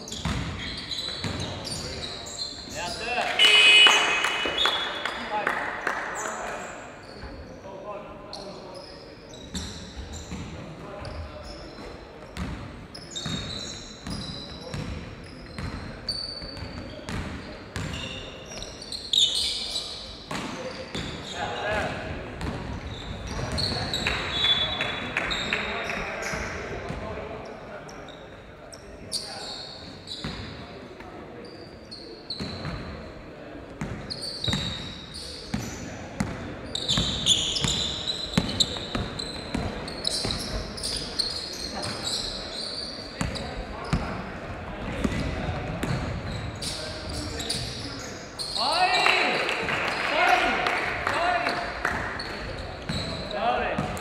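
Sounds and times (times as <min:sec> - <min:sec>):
sneakers squeaking on floor: 0:00.0 - 0:05.3, 0:06.2 - 0:49.3, 0:49.9 - 0:54.0
basketball bouncing on court: 0:00.1 - 0:01.5, 0:12.4 - 0:18.7, 0:20.3 - 0:24.0, 0:33.8 - 0:34.9, 0:35.5 - 0:40.7, 0:43.2 - 0:44.2, 0:44.8 - 0:46.4
players calling out: 0:02.7 - 0:06.7.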